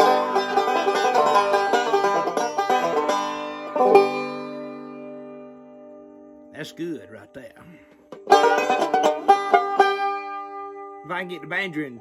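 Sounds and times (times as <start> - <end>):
banjo picking bright notes: 0.0 - 12.0.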